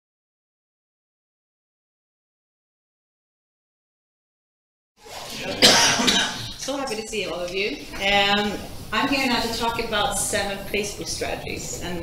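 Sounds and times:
room sound: 0:05.0 - 0:12.0
person coughing loudly: 0:05.4 - 0:06.6.

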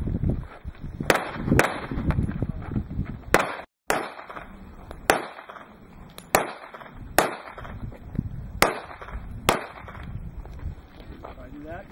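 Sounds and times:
pistol shots with echo: 0:03.3 - 0:05.7, 0:06.3 - 0:07.7, 0:08.6 - 0:10.0.

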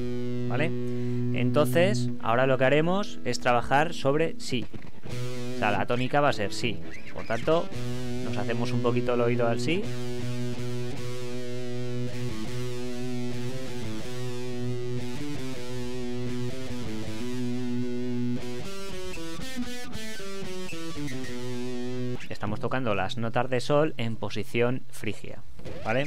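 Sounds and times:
electric guitar scale: 0:00.0 - 0:22.4, 0:25.6 - 0:26.0.

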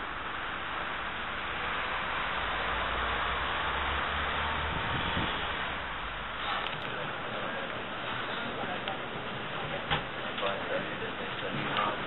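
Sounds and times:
passing traffic hiss: 0:00.0 - 0:09.6
wind on microphone: 0:04.6 - 0:05.9.

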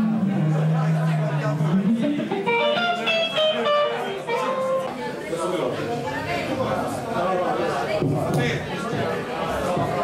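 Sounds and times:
guitar playing single notes: 0:00.0 - 0:05.2.

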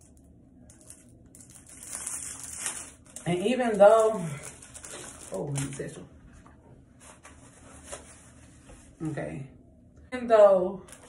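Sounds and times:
wig cap rustling: 0:07.0 - 0:09.0.

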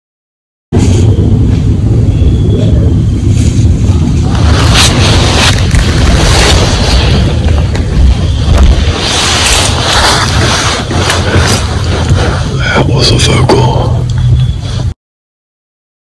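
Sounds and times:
loud low rumble: 0:00.7 - 0:14.9.

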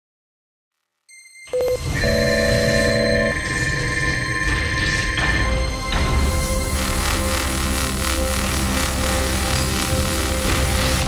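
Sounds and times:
electronic beeping: 0:01.5 - 0:03.4
held synthetic tones: 0:01.6 - 0:03.4.

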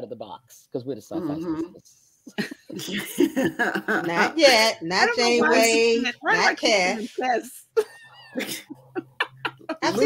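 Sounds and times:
women laughing: 0:02.3 - 0:04.8, 0:07.7 - 0:10.0.

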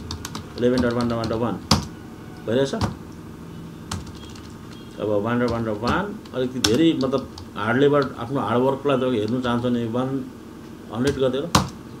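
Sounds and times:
keyboard keystroke: 0:00.0 - 0:01.9, 0:03.9 - 0:08.2
low steady hum: 0:00.0 - 0:12.0.

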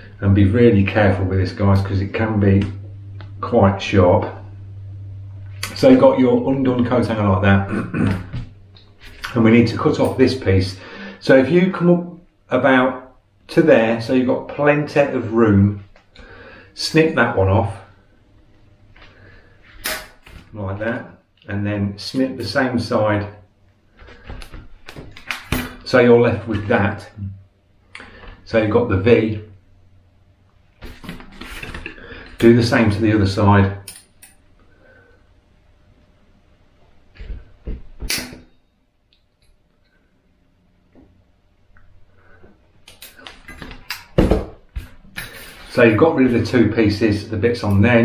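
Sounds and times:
metal clicks of cutting pliers: 0:33.9 - 0:34.4.

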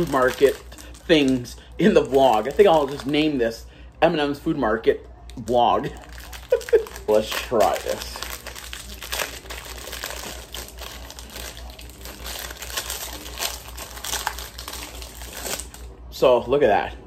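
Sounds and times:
plastic wrapper crinkling: 0:00.0 - 0:03.4, 0:05.8 - 0:16.0.

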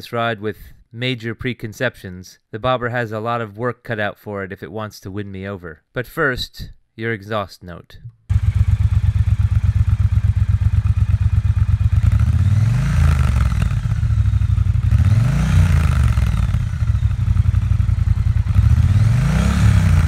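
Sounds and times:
motorcycle engine idling and revving: 0:08.3 - 0:20.0.

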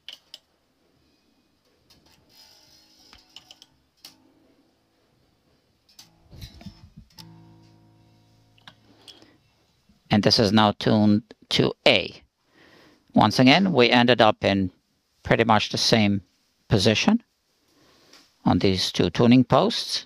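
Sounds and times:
bass string plucked: 0:06.0 - 0:08.9.

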